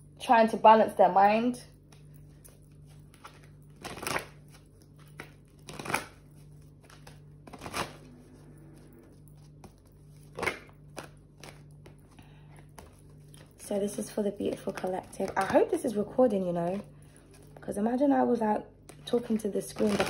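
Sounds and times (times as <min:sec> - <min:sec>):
faint steady hum: 0:00.0 - 0:20.0
cards being shuffled: 0:01.8 - 0:16.0, 0:16.6 - 0:17.6, 0:18.8 - 0:20.0.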